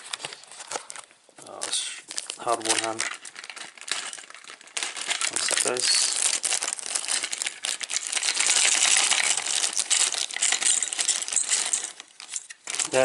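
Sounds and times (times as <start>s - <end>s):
plastic packaging crinkling: 0.0s - 13.0s.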